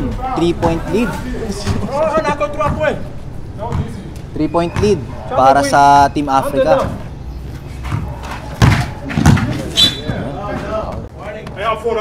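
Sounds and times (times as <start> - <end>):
players calling out: 0.0 - 11.1
basketball sharp thuds: 3.6 - 4.0, 7.8 - 10.3.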